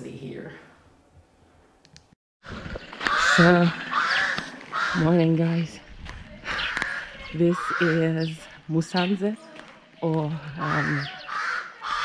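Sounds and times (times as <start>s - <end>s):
outdoor street ambience: 0.9s - 12.0s.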